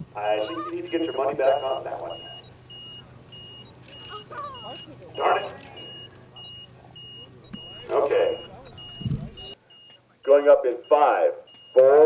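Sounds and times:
high-pitched electronic beeps: 0.4s - 10.0s.

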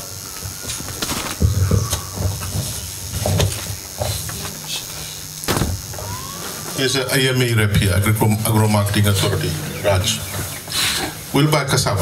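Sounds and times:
man talking: 6.8s - 10.3s, 11.3s - 12.0s.

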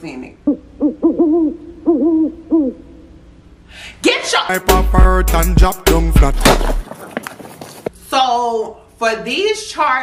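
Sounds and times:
owl-like hooting: 0.3s - 3.4s.

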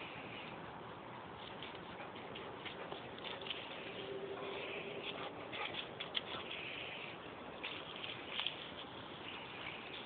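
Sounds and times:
dogs running on grass and leaves: 1.4s - 10.0s.

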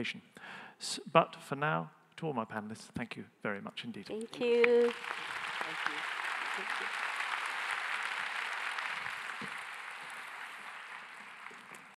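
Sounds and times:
audience applauding: 4.4s - 12.0s.

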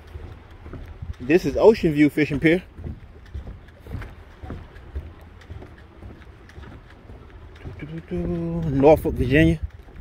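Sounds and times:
footsteps on wooden planks: 0.0s - 10.0s
wind rumble on microphone: 0.0s - 10.0s.

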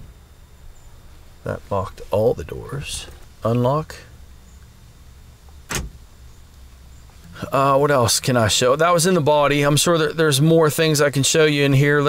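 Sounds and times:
door lock actuator clunk: 5.7s - 6.0s.

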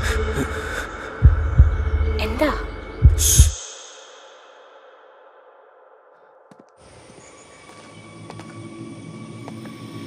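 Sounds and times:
heartbeat thumps: 1.2s - 3.6s.

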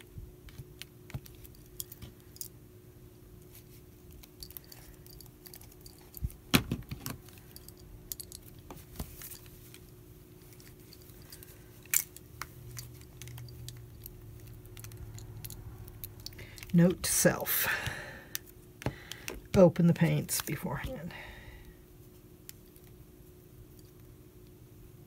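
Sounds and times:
paint tubes clicking and rattling: 10.4s - 17.0s.

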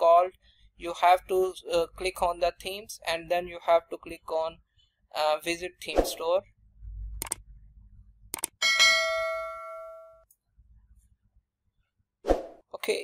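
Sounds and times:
mouse clicks: 7.2s - 7.4s, 8.3s - 8.6s
bright bell-like ding: 8.6s - 10.2s.

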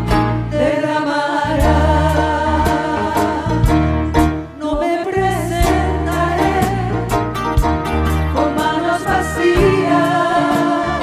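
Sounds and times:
band accompaniment with bass: 0.0s - 11.0s
women singing into microphones: 0.5s - 3.8s, 4.6s - 7.1s, 8.4s - 11.0s.

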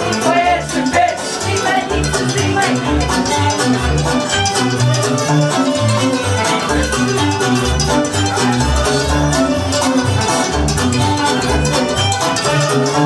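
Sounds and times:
folk dance music: 0.0s - 13.0s.

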